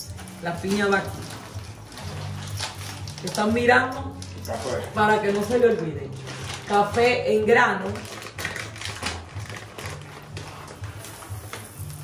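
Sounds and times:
coffee beans rattling in plastic bag: 0:00.0 - 0:12.0
coffee beans pouring onto plate: 0:10.8 - 0:12.0.

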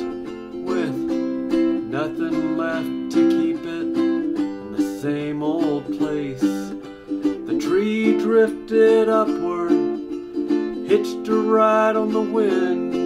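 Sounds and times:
ukulele strummed chords: 0:00.0 - 0:13.0.

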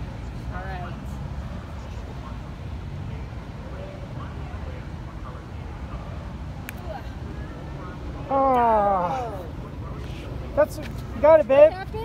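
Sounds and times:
faint distant voices: 0:00.0 - 0:12.0.

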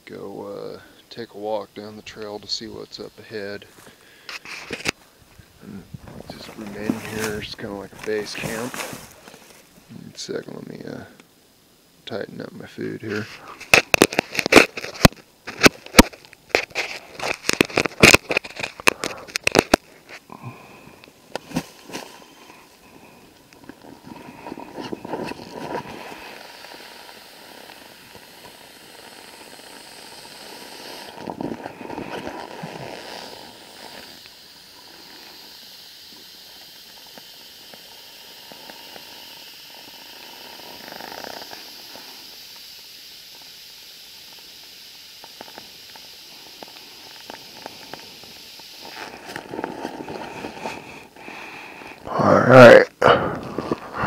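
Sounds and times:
plastic bag rustling: 0:06.0 - 0:09.8.

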